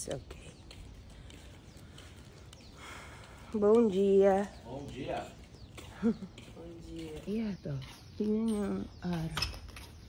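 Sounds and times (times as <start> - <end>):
footsteps on stone paving: 0.0 - 10.0.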